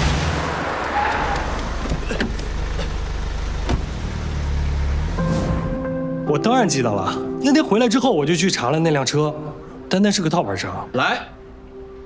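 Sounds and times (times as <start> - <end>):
low tense music: 4.9 - 12.0.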